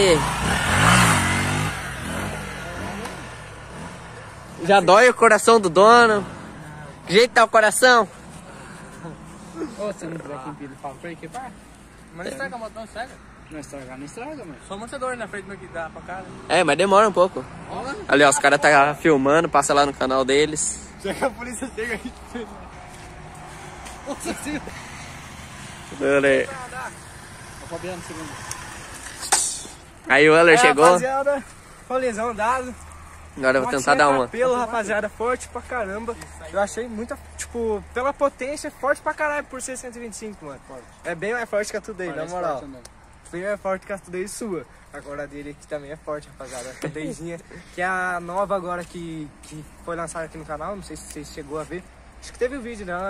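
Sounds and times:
motorcycle engine revving: 0:00.0 - 0:04.9, 0:23.1 - 0:30.0.

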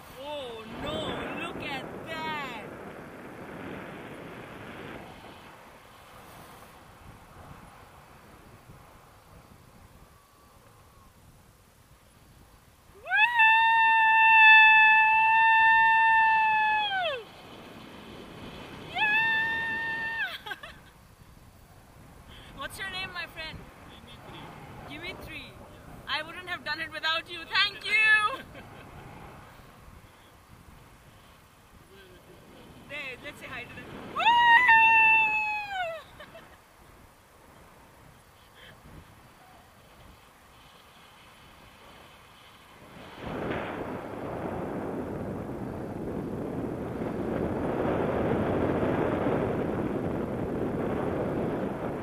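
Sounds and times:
person shouting high-pitched whoop: 0:13.0 - 0:17.3, 0:18.9 - 0:20.4, 0:34.2 - 0:36.1
woman screaming: 0:13.0 - 0:17.3, 0:18.9 - 0:20.7, 0:34.2 - 0:36.2.

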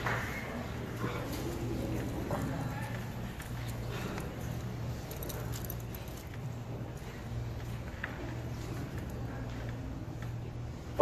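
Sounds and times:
faint voices: 0:00.0 - 0:11.0
low electrical hum: 0:00.0 - 0:11.0.

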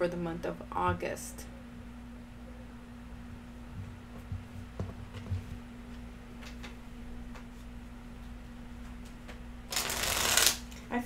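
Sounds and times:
cards being shuffled: 0:09.7 - 0:10.9.

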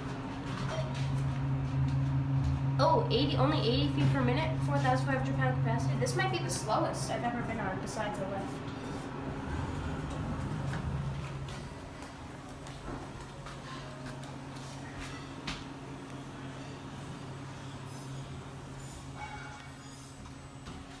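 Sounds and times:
elevator humming: 0:00.0 - 0:21.0
elevator doors sliding open: 0:08.6 - 0:14.1.

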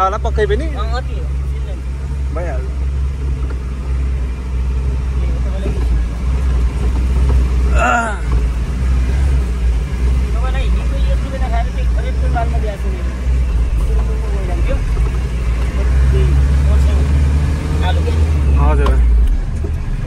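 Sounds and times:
diesel truck engine droning: 0:00.0 - 0:20.0.

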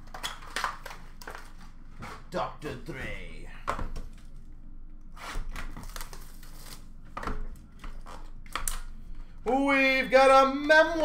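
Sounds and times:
packaging crinkling and tearing: 0:00.0 - 0:01.8, 0:05.5 - 0:07.0.

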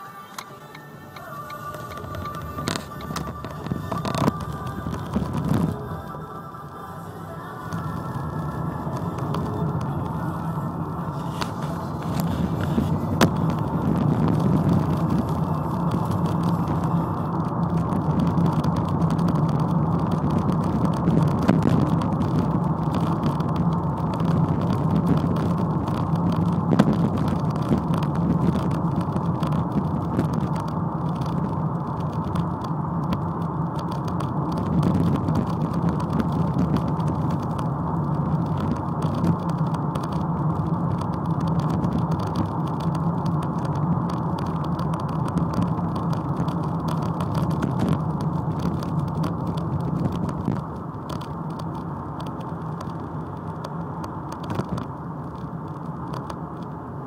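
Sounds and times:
car engine from inside cabin: 0:00.0 - 0:57.0
road noise: 0:00.0 - 0:57.0.

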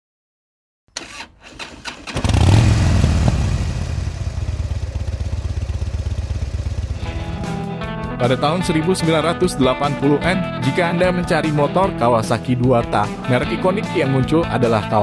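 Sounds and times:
motorcycle engine running: 0:02.1 - 0:07.9
music: 0:07.0 - 0:15.0.

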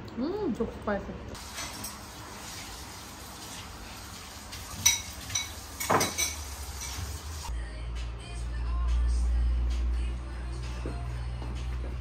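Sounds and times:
dishes and cutlery clinking: 0:01.4 - 0:02.2, 0:04.5 - 0:07.3.

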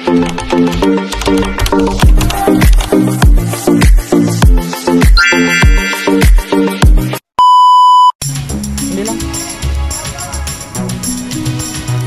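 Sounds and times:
high electronic beep: 0:05.2 - 0:06.5
music with tambourine and drums: 0:08.2 - 0:12.0.

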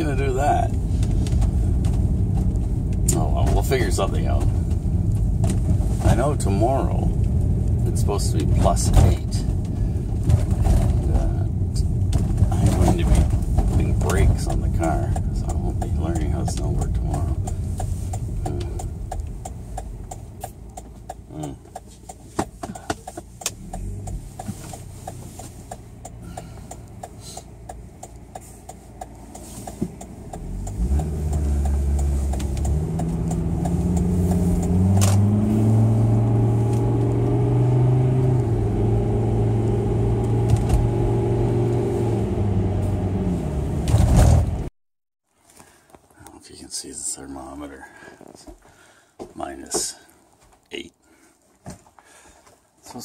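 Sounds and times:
car engine: 0:00.0 - 0:44.7
road noise inside car: 0:00.0 - 0:44.7.

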